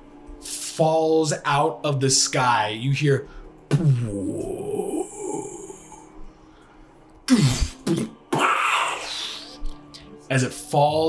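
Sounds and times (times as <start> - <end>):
man making mouth sound effects: 3.7 - 6.0, 7.3 - 9.8.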